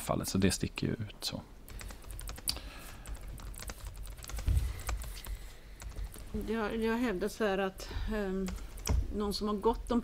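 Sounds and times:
typing on a keyboard: 1.7s - 6.3s.

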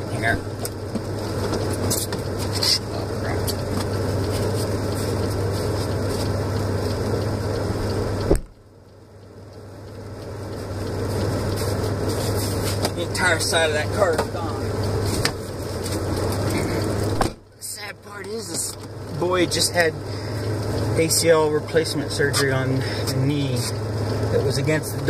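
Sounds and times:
car idling hum: 0.0s - 25.0s
sharp thump: 8.2s - 8.6s, 17.1s - 17.4s.

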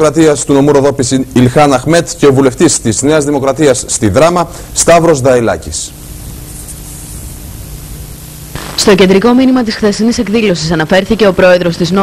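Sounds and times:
background noise: 0.0s - 12.0s
faint low hum: 0.0s - 12.0s
steady recording hiss: 0.0s - 12.0s.

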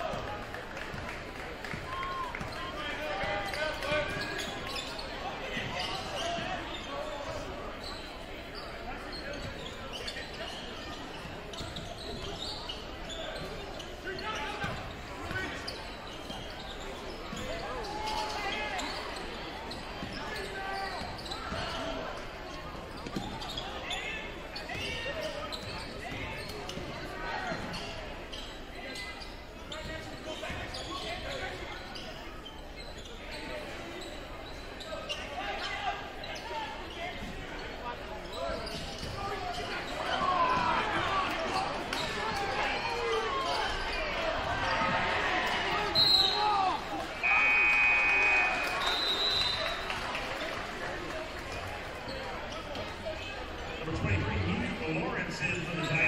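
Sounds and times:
voices of players and spectators: 0.0s - 56.0s.

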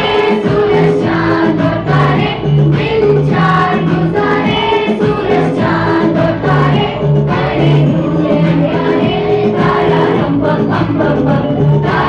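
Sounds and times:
group of voices singing: 0.0s - 12.0s
instrumental accompaniment: 0.0s - 12.0s.

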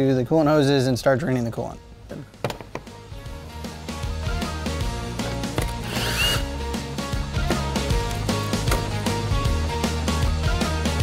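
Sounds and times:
background music with beat: 2.0s - 11.0s
power driver undoing bolts: 5.6s - 6.5s.

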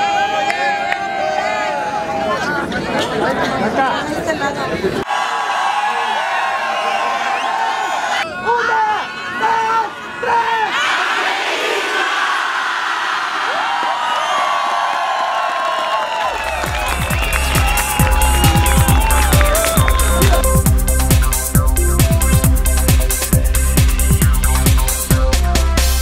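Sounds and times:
crowd cheering and shouting: 0.0s - 2.8s, 5.0s - 21.1s
crowd shouting in unison: 5.0s - 14.2s, 14.8s - 20.6s
electronic dance music: 16.4s - 26.0s.

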